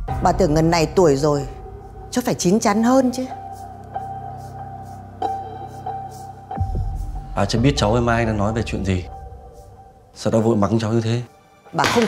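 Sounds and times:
deep bass swell: 0.0s - 10.1s.

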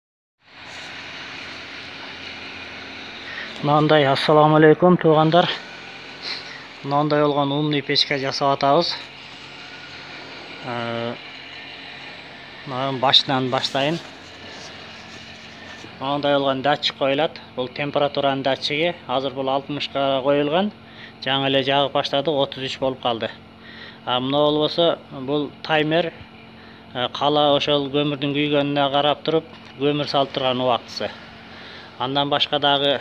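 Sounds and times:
air compressor running: 0.4s - 33.0s
stove machinery whirring: 0.4s - 33.0s.

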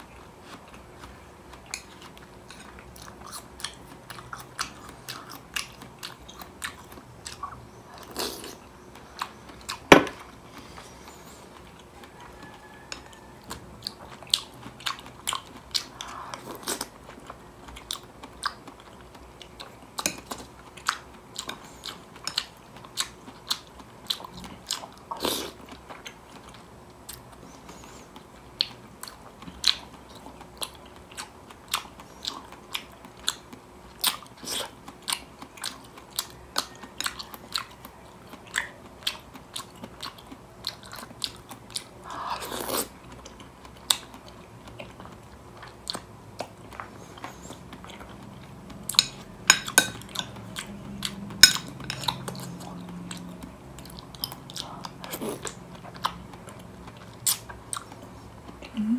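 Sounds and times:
close chewing: 0.0s - 58.9s.

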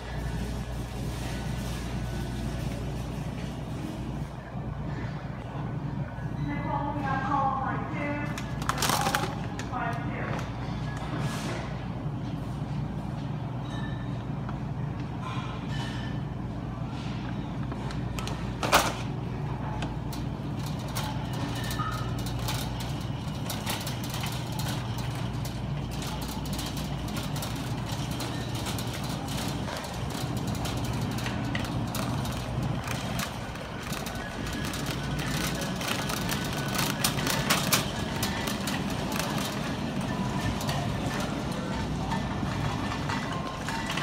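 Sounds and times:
shopping cart rolling: 0.0s - 4.4s, 6.5s - 14.2s, 15.7s - 44.0s
steady low hum: 9.3s - 44.0s.

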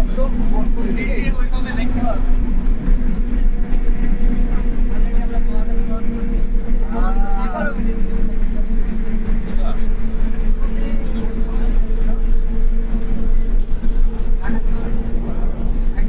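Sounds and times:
bus engine and road drone: 0.0s - 16.0s
passengers talking: 0.0s - 16.0s.

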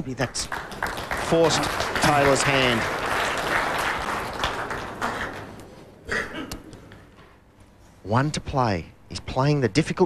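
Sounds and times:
audience applause: 0.0s - 5.6s.

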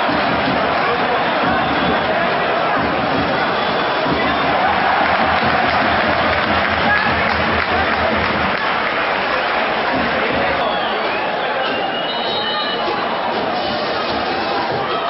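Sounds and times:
stadium crowd shouting: 0.0s - 15.0s.

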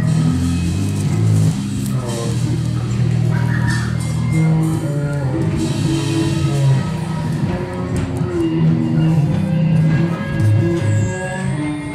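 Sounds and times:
live band music: 0.0s - 11.9s
loud low bass notes: 0.0s - 11.9s.

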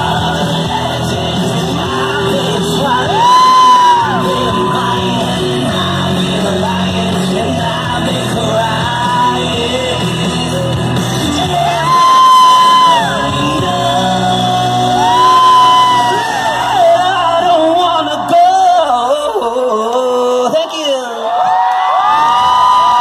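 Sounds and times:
pop backing track through pa: 0.0s - 20.7s
singer belting into a microphone: 0.0s - 21.4s.

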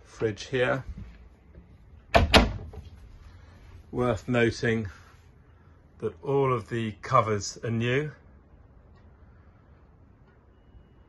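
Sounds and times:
fridge door shutting: 2.2s - 2.8s.

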